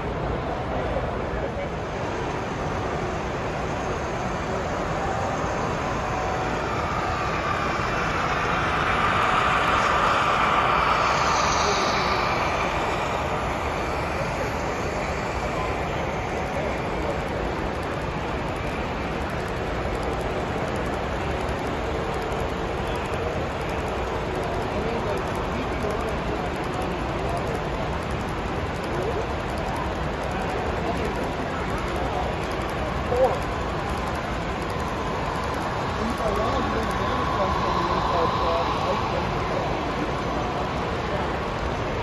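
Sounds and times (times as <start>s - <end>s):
exhibition hall crowd hubbub: 0.0s - 42.0s
model train rolling on track: 0.0s - 42.0s.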